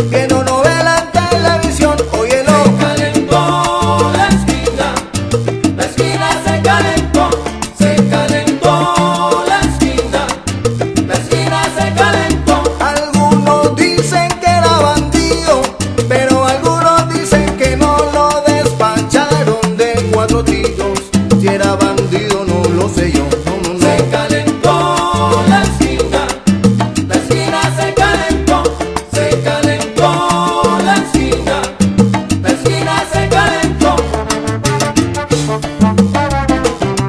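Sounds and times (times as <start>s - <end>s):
salsa band instrumental: 0.0s - 37.0s.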